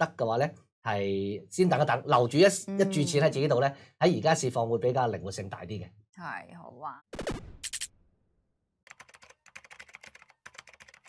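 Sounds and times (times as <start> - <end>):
keyboard typing clicks: 8.9 - 11.0.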